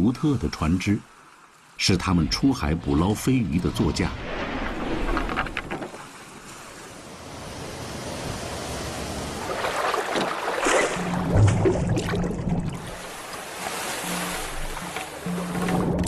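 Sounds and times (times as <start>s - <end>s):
sea water splashing: 0.0s - 16.0s
low music notes: 11.0s - 16.0s.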